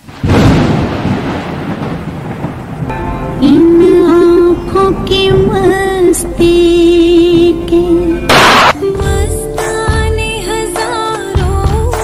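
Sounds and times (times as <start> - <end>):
steady rain: 0.0 - 3.9
thunder rumbling: 0.0 - 8.8.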